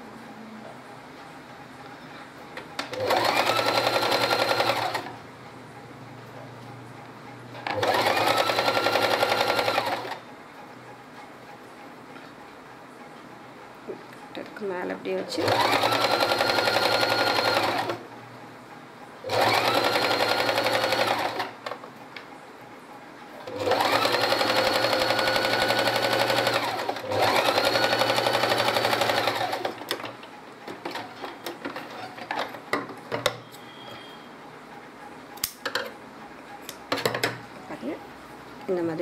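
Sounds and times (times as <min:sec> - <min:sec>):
sewing machine stitching: 0:02.8 - 0:05.1, 0:07.6 - 0:10.2, 0:15.4 - 0:18.0, 0:19.3 - 0:21.6, 0:23.5 - 0:30.1.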